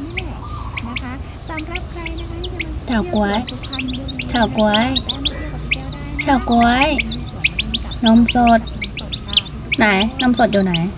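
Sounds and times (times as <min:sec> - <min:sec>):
chicks peeping: 0:00.0 - 0:10.9.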